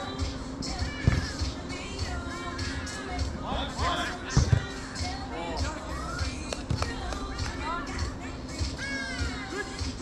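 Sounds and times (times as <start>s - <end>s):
ball thuds: 1.0s - 1.4s, 4.3s - 4.8s.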